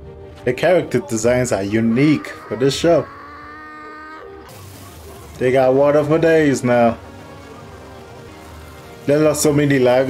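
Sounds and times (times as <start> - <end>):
water spraying hiss: 4.5 - 6.5.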